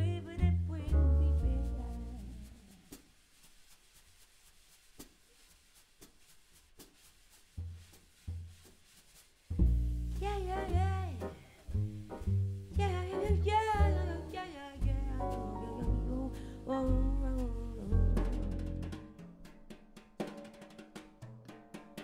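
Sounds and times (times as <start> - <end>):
upright bass: 0.0 - 2.6, 9.5 - 19.1
soft regular taps: 3.0 - 12.8
piano chords: 12.0 - 18.5
woman singing long notes: 12.8 - 18.3.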